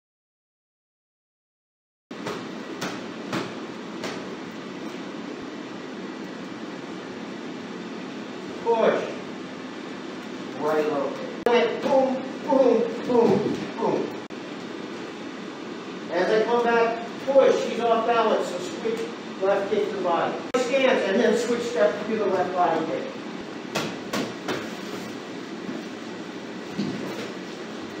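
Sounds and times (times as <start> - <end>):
steady background noise: 2.1 - 28.0
room noise hiss: 2.2 - 28.0.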